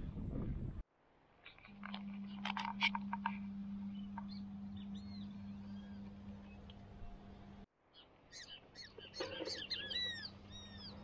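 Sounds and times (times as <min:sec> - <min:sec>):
steady low hum: 0:00.0 - 0:07.7
birds chirping: 0:01.4 - 0:11.0.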